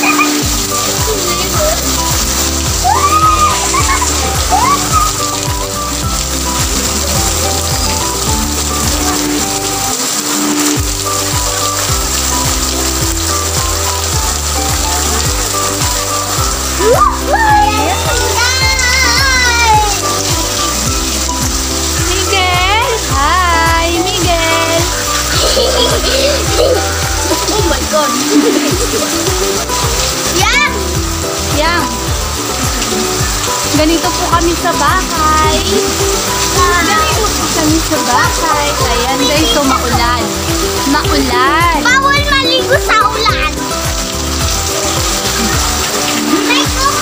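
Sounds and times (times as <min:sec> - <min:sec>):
background music with held notes: 0:00.0 - 0:47.0
heavy rain on roofs: 0:00.0 - 0:47.0
person's voice: 0:22.0 - 0:25.0, 0:31.5 - 0:32.0, 0:33.7 - 0:35.9, 0:36.5 - 0:43.6.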